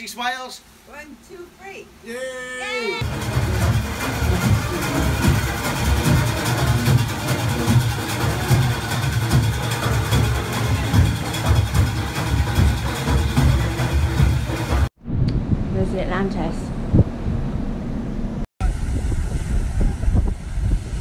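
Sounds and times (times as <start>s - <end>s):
parade band music with drums: 3.0s - 14.9s.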